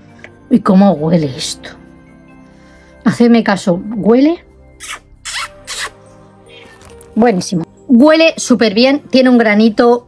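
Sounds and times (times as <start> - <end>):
quiet background music: 0.0 - 10.0
person sniffing: 4.8 - 6.0.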